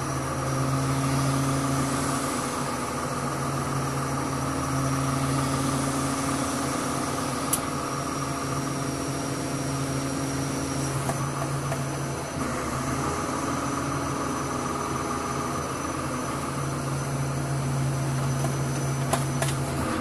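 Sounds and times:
crane engine humming: 0:00.0 - 0:20.0.

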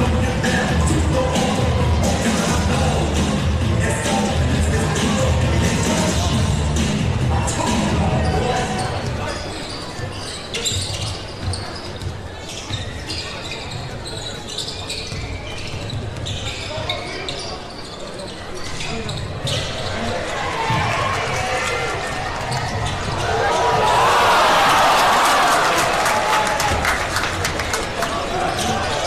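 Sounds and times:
crowd noise and voices: 0:00.0 - 0:29.0.

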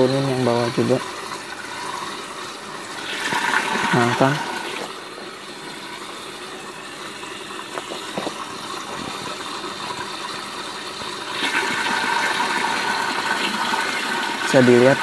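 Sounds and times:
water running into a plastic tank: 0:00.0 - 0:15.0.

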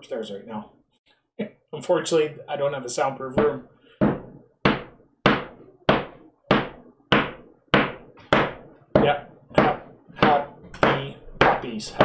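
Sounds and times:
sharp knocks: 0:03.3 - 0:12.0.

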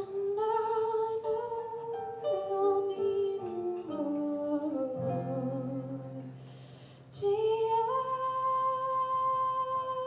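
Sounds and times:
woman singing: 0:00.0 - 0:06.4, 0:07.1 - 0:10.0.

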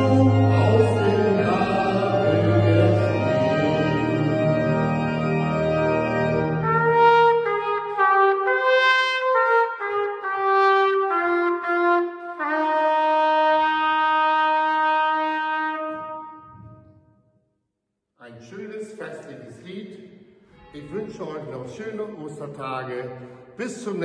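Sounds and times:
solo trumpet playing hymn melody: 0:06.0 - 0:16.7.

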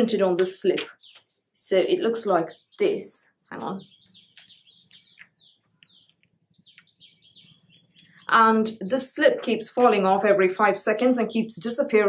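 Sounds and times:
faint bird chirping: 0:00.1 - 0:08.8.

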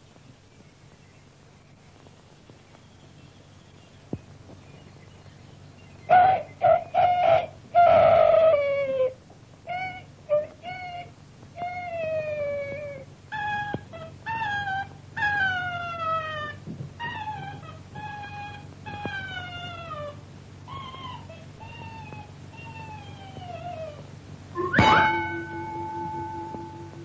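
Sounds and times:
ringing bell-like strike: 0:24.6 - 0:27.0
wavering downward sliding notes: 0:24.6 - 0:27.0.

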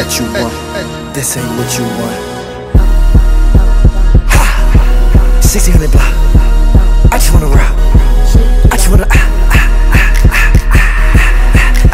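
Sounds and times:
hip hop music: 0:00.0 - 0:11.9
deep bass and kick drum: 0:02.8 - 0:11.9.

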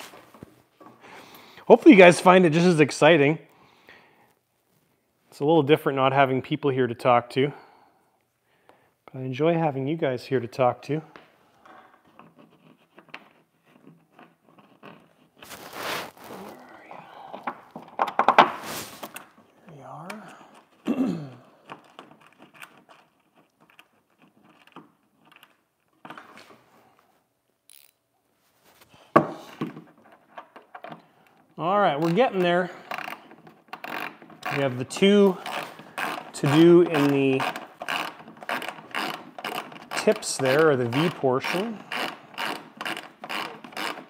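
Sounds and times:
handling scrapes: 0:00.0 - 0:01.8, 0:12.0 - 0:17.7, 0:18.5 - 0:19.4, 0:28.4 - 0:29.6.

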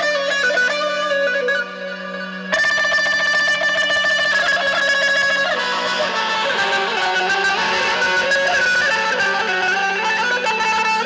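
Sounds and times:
low drone note: 0:00.8 - 0:11.0
high held melodic note with ornaments: 0:02.6 - 0:10.9.

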